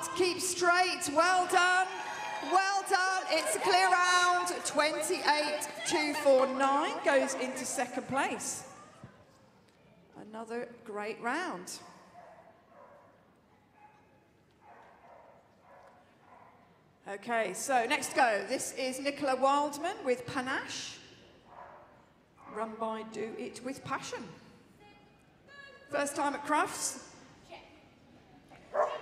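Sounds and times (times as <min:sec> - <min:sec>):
faint arena background: 0:00.0 - 0:29.0
dog barking: 0:12.1 - 0:13.1, 0:13.8 - 0:16.6, 0:28.7 - 0:29.0.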